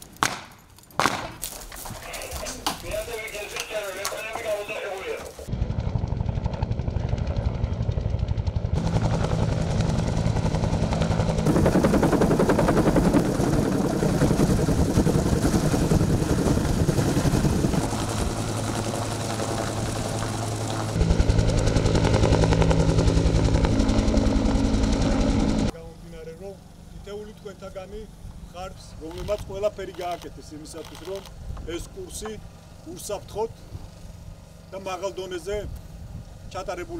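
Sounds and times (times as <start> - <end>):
helicopter engine and rotor: 3.1 - 35.2.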